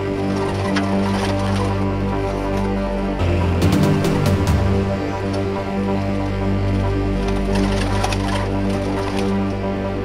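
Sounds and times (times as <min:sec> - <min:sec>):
music with sustained notes: 0:00.0 - 0:10.0.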